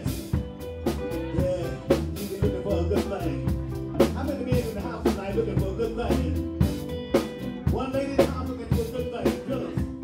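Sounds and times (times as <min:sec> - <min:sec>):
electric guitar: 0:00.0 - 0:10.0
keyboard: 0:00.0 - 0:10.0
steady drum beat: 0:00.0 - 0:10.0.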